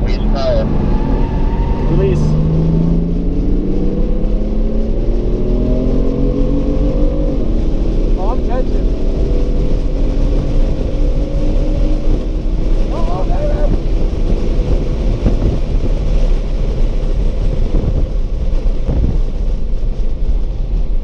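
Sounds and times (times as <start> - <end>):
car engine accelerating: 0.0 - 21.0
road and wind noise: 0.0 - 21.0.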